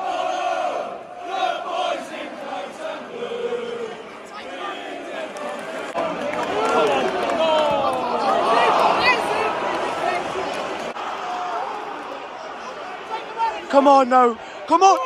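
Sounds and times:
crowd singing and chanting: 0.0s - 6.5s.

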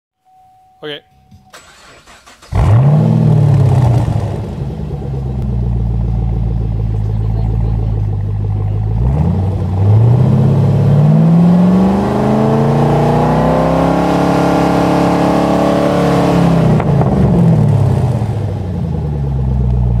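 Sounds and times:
car engine revving and idling: 1.6s - 20.0s.

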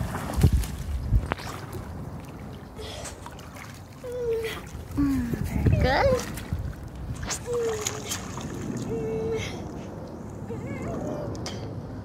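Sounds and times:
pool water splashing: 0.0s - 5.2s, 5.8s - 9.8s.

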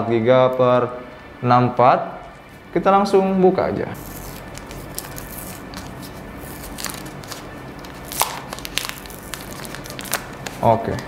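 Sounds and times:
plastic film peeling and crinkling: 4.0s - 11.0s.

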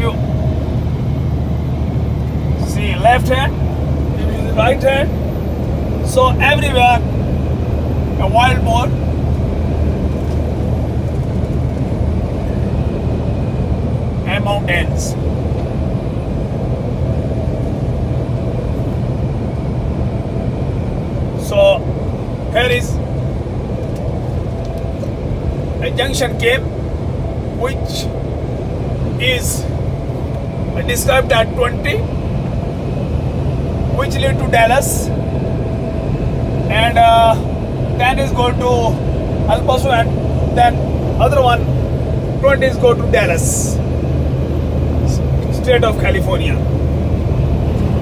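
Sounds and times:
road and engine noise in car cabin: 0.0s - 48.0s.

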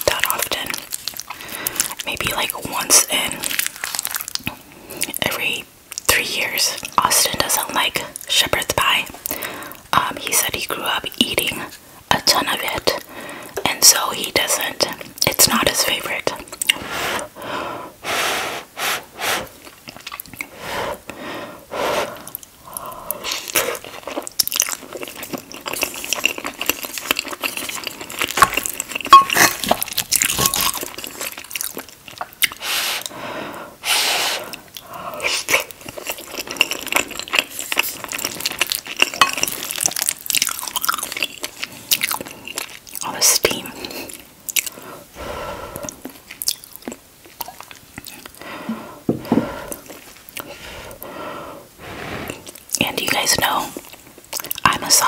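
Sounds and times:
wet chewing sounds: 0.0s - 5.3s, 19.4s - 21.2s, 22.0s - 33.2s, 34.0s - 51.1s, 52.2s - 55.0s.

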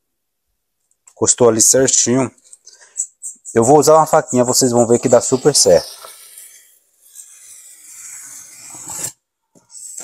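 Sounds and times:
knife scoring foam board: 3.3s - 10.0s.

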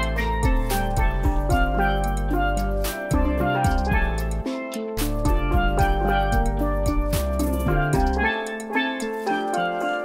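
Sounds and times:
low bass notes: 0.0s - 8.4s
drum beat: 0.0s - 9.7s
steel pan melody: 0.0s - 10.0s.

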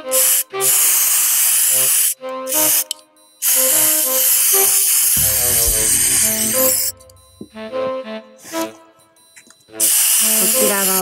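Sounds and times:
aerosol spray can hissing: 0.2s - 2.8s.

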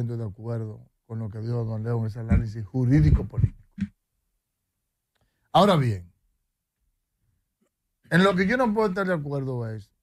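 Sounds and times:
man speaking: 0.0s - 3.9s, 5.5s - 6.1s, 8.1s - 10.0s.

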